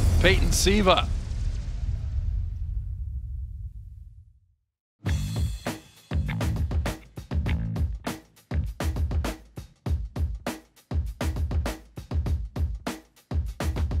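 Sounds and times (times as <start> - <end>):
music with bass-heavy beat: 5.1 - 14.0.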